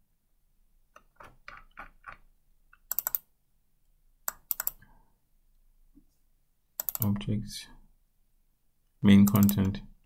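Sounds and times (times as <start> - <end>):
computer mouse clicks: 0.9 - 3.3, 4.2 - 4.8, 6.8 - 7.1, 9.2 - 9.8.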